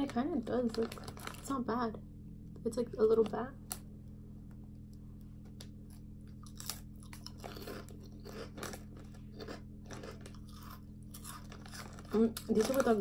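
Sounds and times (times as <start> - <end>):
steady low hum: 0.0 - 13.0
person chewing crunchy snack: 5.8 - 13.0.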